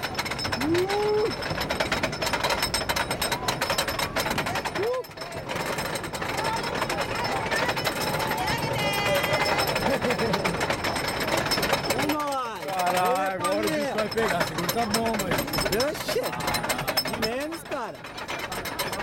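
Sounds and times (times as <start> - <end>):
roller coaster lift chain clattering: 0.0 - 19.0.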